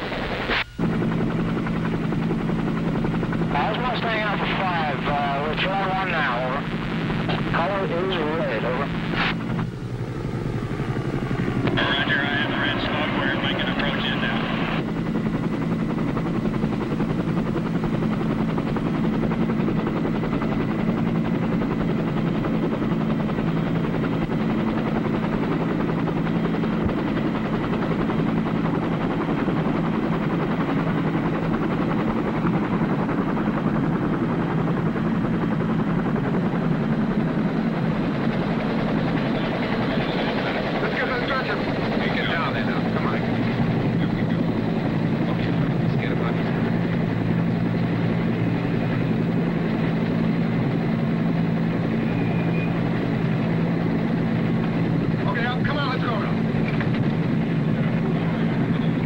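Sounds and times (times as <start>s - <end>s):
helicopter rotor drone: 0.0s - 59.0s.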